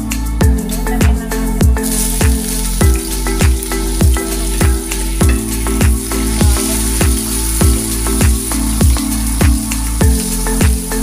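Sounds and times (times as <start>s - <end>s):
background music with beat: 0.0s - 11.0s
onion sizzling in a wok: 1.8s - 11.0s.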